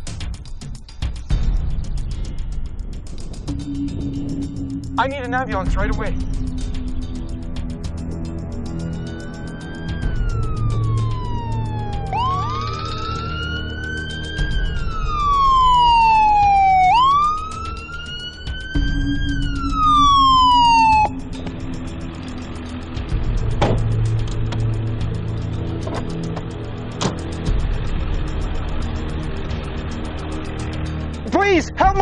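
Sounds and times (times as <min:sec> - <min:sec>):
ambulance siren wailing: 0:03.5 - 0:23.2.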